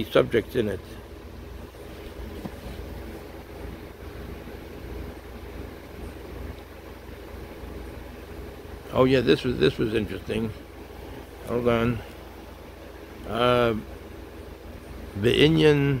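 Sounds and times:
low background hum: 0.0 - 16.0.

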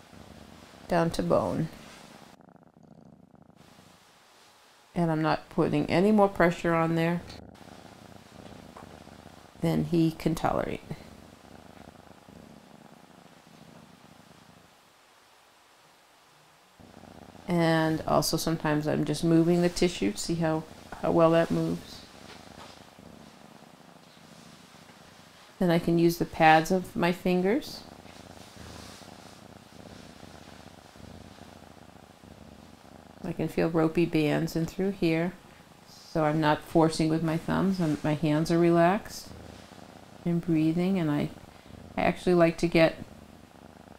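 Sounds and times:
cat purring softly: 0.0 - 43.9.

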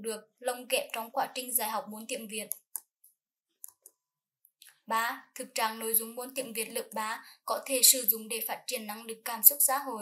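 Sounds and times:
person speaking: 0.0 - 4.0, 4.6 - 10.0.

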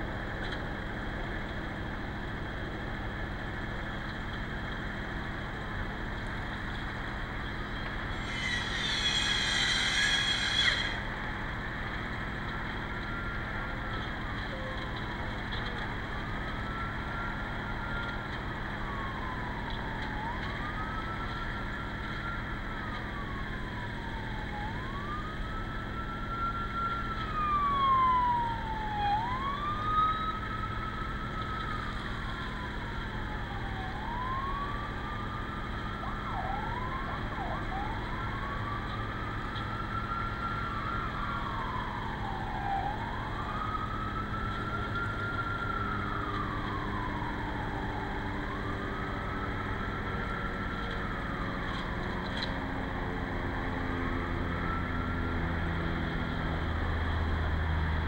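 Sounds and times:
emergency siren wailing: 0.0 - 58.0
siren yelps: 7.3 - 57.0.

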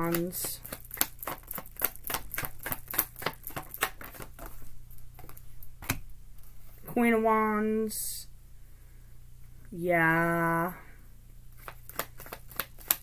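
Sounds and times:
cards being shuffled: 0.0 - 6.0, 11.6 - 13.0
card snapping: 11.6 - 13.0.

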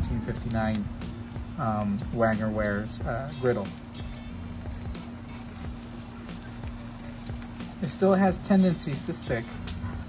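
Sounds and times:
egg sizzling in butter: 0.0 - 10.0
steady low hum: 0.0 - 10.0.

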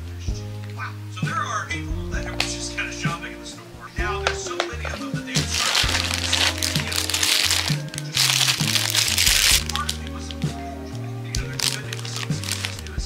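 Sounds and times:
background music: 0.0 - 13.0
plastic bag crinkling: 4.3 - 10.5, 11.3 - 13.0.

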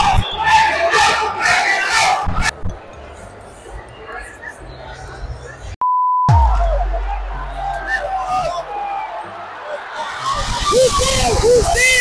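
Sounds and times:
crowd of fans shouting: 0.0 - 2.6, 6.3 - 12.0
quieter voices: 1.1 - 12.0.

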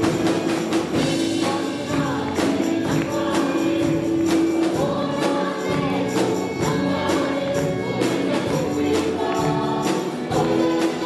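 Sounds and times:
electric guitars: 0.0 - 11.0
percussion beat: 0.0 - 11.0
women singing gospel chorus: 1.2 - 11.0.

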